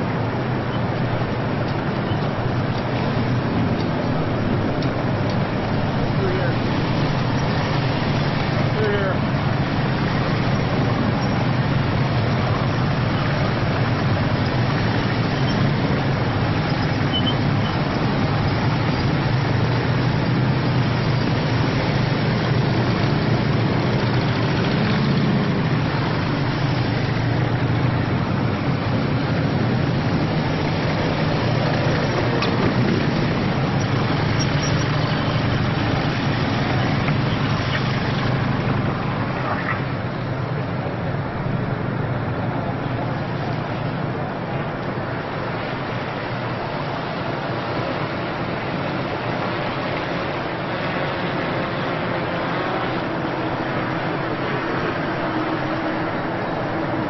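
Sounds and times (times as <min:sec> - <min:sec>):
motorcycle engines rumbling: 0:00.0 - 0:57.0.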